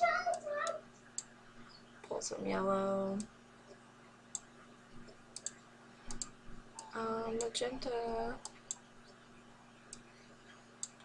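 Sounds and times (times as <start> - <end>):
computer mouse clicks: 4.3 - 7.6, 10.8 - 11.0.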